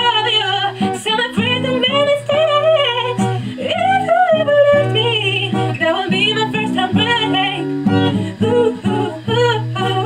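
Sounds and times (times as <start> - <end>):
acoustic guitar strumming: 0.0 - 10.0
woman singing: 0.0 - 10.0.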